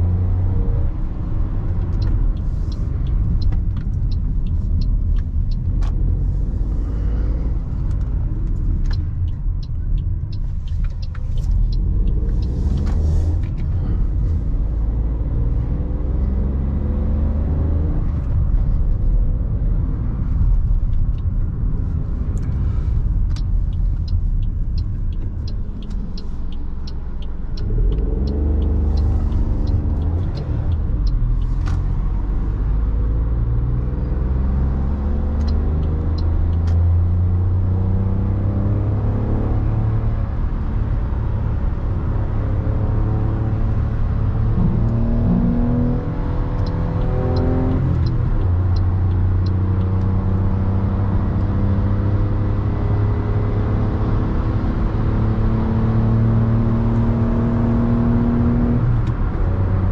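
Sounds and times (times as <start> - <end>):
car engine accelerating: 0.0 - 59.9
road rumble: 0.0 - 59.9
light ticking: 1.2 - 14.6, 20.4 - 33.4, 34.7 - 37.3, 46.5 - 50.6.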